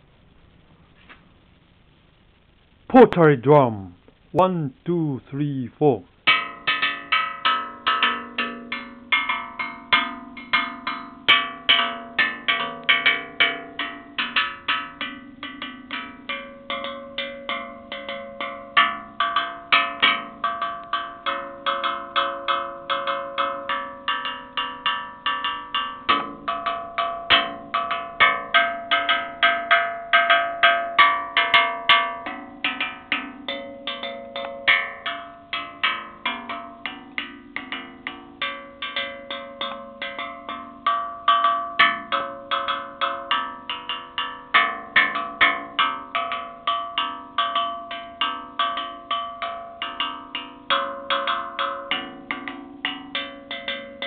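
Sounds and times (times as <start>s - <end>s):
clay tongue drum notes: 4.4s - 54.0s.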